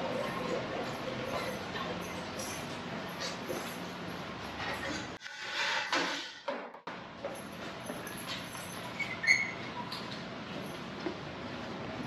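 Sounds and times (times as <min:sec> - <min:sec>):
short squeak: 0:08.9 - 0:10.0.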